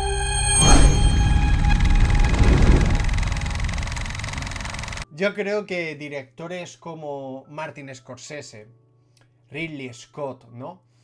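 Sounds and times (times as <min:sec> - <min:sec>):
high sustained tones ringing: 0:00.0 - 0:04.0
deep rumbling boom: 0:00.6 - 0:04.2.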